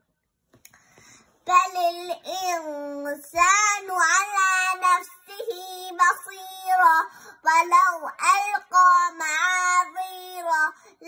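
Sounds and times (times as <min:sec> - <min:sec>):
girl chanting melodically: 0:01.4 - 0:11.0.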